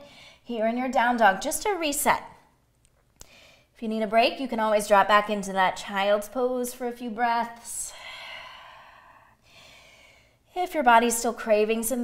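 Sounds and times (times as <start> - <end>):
faint breath: 3.2 - 3.7, 7.9 - 10.5.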